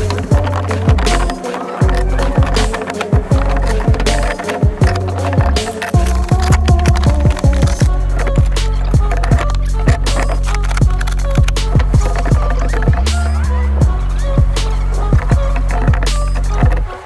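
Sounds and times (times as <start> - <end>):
music with deep bass hits: 0.0 - 17.0.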